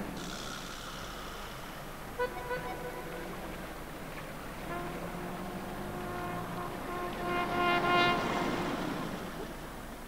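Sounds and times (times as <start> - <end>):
car driving past: 3.1 - 9.9.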